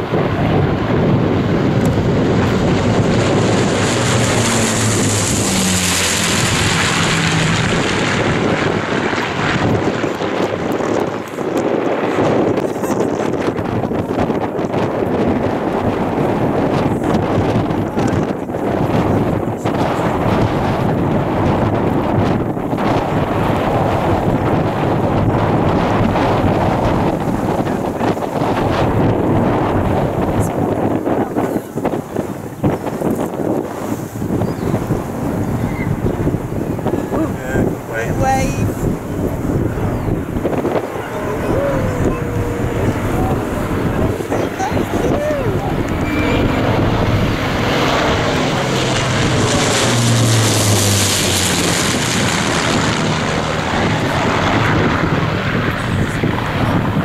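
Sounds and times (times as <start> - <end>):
aircraft engines droning: 0.0 - 57.0
wind noise on microphone: 0.0 - 57.0.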